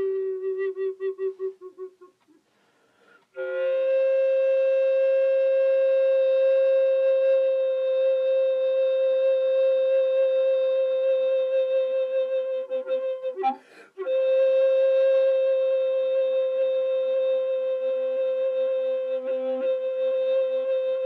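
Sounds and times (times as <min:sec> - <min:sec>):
recorder playing long notes: 0:00.0 - 0:02.2, 0:03.4 - 0:21.0.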